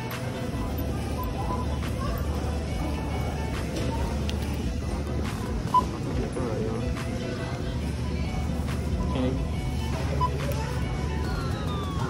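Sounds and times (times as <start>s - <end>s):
background music: 0.0s - 12.0s
store noise: 0.0s - 12.0s
scanner beep: 1.1s - 1.8s, 5.6s - 6.0s, 9.0s - 10.5s.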